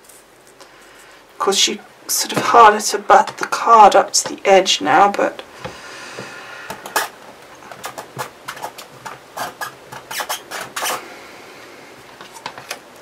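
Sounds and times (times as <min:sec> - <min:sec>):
rubbing scrape: 0:07.8 - 0:11.0.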